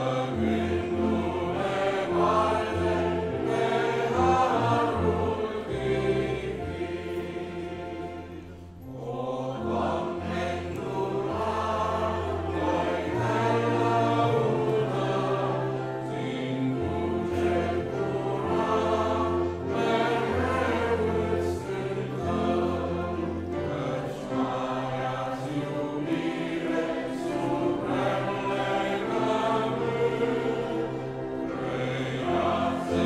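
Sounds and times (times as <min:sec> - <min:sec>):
congregation singing a hymn: 0:00.0 - 0:33.0
piano: 0:00.0 - 0:33.0.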